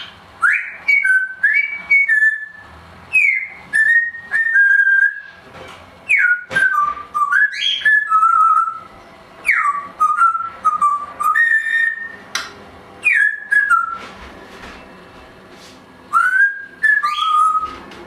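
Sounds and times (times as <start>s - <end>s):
parrot whistling: 0.0s - 5.4s, 6.1s - 12.3s, 13.0s - 14.0s, 16.1s - 17.8s.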